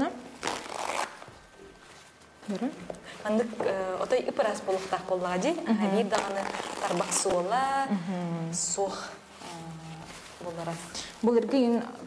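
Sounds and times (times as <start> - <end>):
paper towel ripping: 0.0 - 2.8, 4.5 - 7.8.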